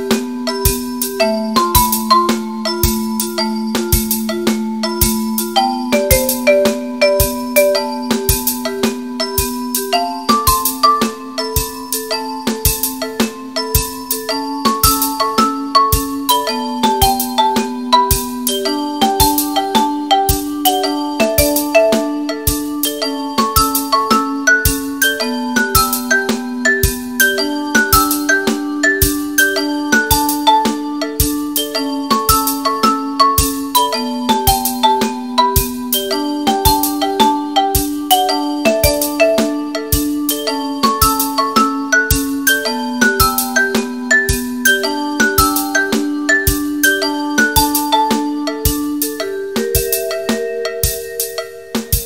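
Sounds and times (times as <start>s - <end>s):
low percussion accent: 0.0s - 29.4s, 30.0s - 52.0s
mallet percussion ensemble: 0.0s - 52.0s.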